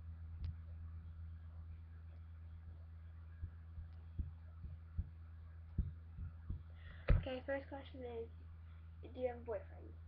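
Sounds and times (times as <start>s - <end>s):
dull low thumps: 0.0s - 7.4s
low electrical hum: 0.0s - 10.0s.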